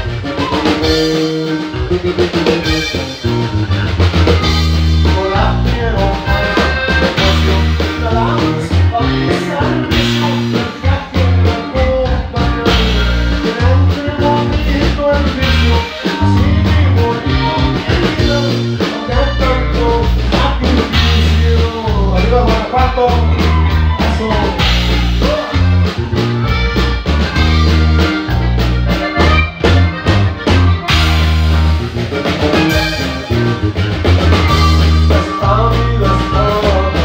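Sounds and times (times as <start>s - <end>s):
bass notes: 0.0s - 37.0s
button accordion melody: 0.0s - 37.0s
drum kit: 0.0s - 37.0s
guitar: 0.0s - 37.0s.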